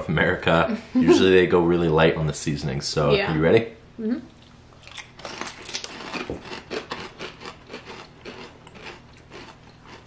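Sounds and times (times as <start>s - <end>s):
people crunching crisps: 4.8s - 10.0s.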